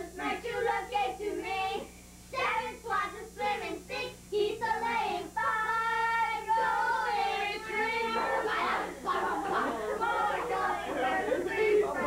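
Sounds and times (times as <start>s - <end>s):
children and women singing: 0.0s - 12.0s.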